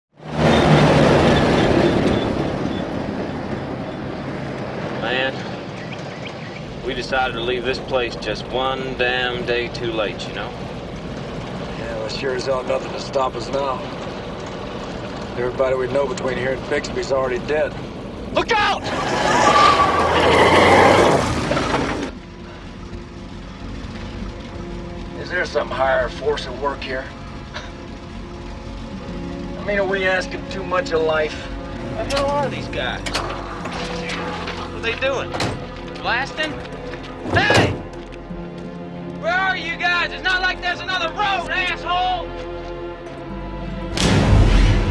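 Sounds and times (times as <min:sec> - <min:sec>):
pickup truck engine running: 0:00.2 - 0:18.7, 0:19.3 - 0:40.5
tyres skidding on gravel: 0:00.2 - 0:42.7
truck bed rattling: 0:19.3 - 0:22.4, 0:32.0 - 0:38.1.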